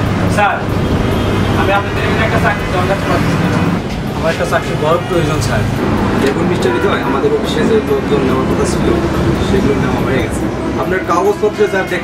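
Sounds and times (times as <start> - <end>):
man talking: 1.5 - 12.0.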